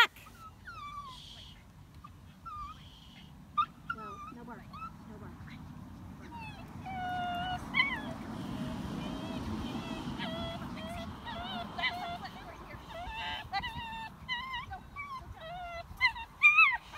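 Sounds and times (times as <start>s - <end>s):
small dog whining: 2.4s - 5.6s, 6.2s - 16.9s.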